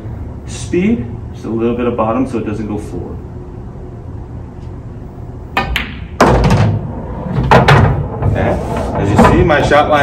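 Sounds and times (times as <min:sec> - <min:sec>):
ball dropping into pocket thunk: 0:05.6 - 0:06.8
sharp click of balls colliding: 0:05.6 - 0:06.8
cue tip striking ball: 0:05.6 - 0:09.3
ball rolling low rumble: 0:06.2 - 0:10.0.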